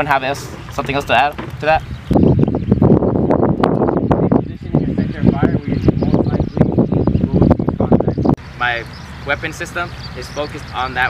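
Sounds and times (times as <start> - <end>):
wind buffeting microphone: 0.0 - 11.0
sharp clicks and knocks: 0.5 - 1.8.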